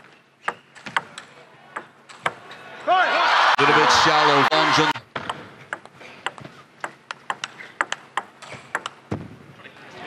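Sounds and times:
table tennis ball clicking: 5.2s - 9.0s.

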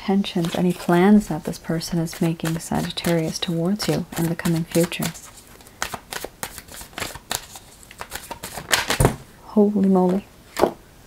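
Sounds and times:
cards being shuffled: 0.3s - 9.2s.

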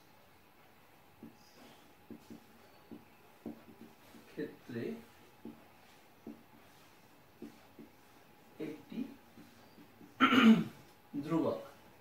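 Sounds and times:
man clearing throat: 10.2s - 10.8s.

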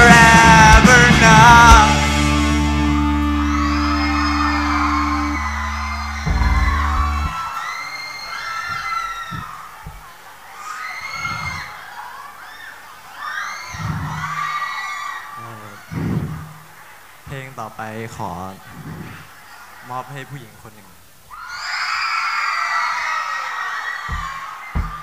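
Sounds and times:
rock band chord ringing: 0.0s - 7.4s
audience cheering and screaming: 1.4s - 17.1s, 21.3s - 25.0s
loud final band hit: 5.4s - 7.4s
low thumps: 6.2s - 7.4s, 24.1s - 25.0s.

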